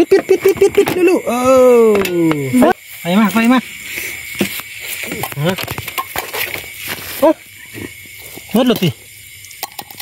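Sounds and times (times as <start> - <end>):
person exclaiming: 0.0 - 2.7
night insects trilling: 0.0 - 10.0.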